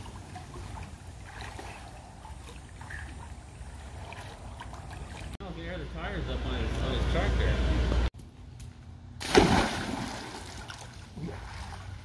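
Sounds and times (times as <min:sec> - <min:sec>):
water churning and sloshing: 0:00.0 - 0:05.4, 0:09.2 - 0:12.0
loud splash into pool: 0:09.2 - 0:11.8.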